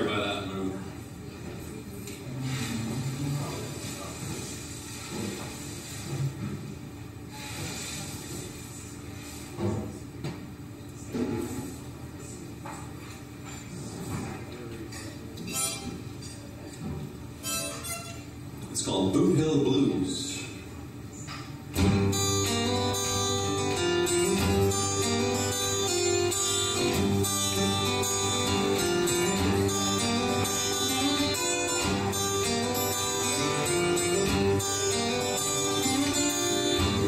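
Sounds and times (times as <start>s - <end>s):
murmur of voices: 0.0s - 6.6s, 8.1s - 37.0s
acoustic guitar being handled: 21.8s - 37.0s.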